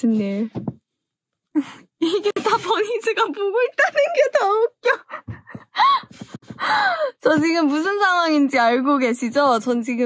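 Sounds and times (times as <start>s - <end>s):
woman laughing breathlessly: 4.9s - 7.2s.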